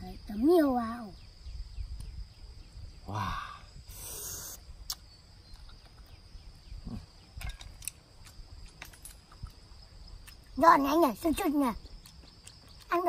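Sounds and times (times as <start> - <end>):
low hum of voice: 3.1 - 3.7
short hiss: 3.9 - 5.0
eating shellfish clicks and clinks: 7.4 - 9.6, 11.9 - 13.0.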